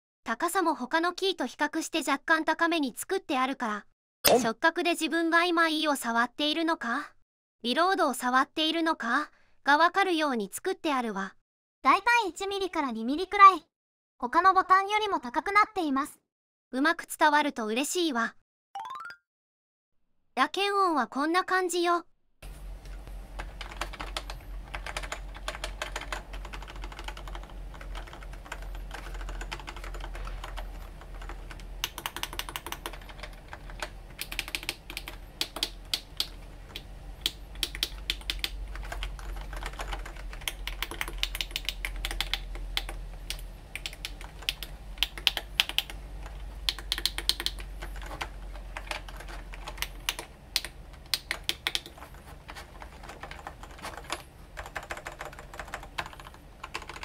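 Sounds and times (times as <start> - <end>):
faint low hum: 22.4 - 57.0
keypad keys clicking: 23.4 - 57.0.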